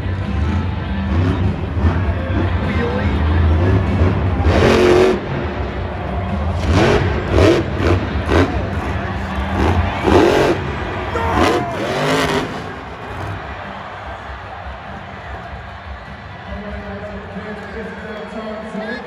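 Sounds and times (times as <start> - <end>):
truck engine revving: 0.1 - 13.7.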